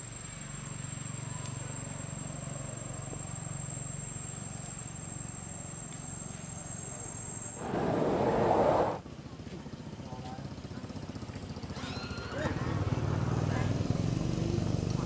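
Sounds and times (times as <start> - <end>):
burst of rough noise: 7.6 - 9.0
low hum: 7.6 - 9.0.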